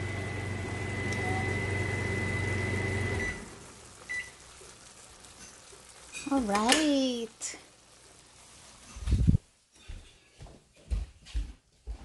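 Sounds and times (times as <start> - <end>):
kitchen appliance humming: 0.0 - 9.3.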